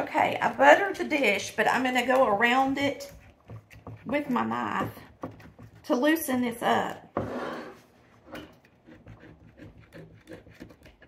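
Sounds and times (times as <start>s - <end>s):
knife scraping ceramic dish: 7.1s - 11.0s.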